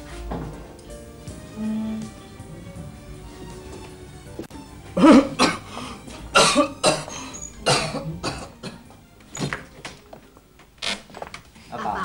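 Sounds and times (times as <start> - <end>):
man coughing: 5.0 - 5.7, 6.3 - 8.8.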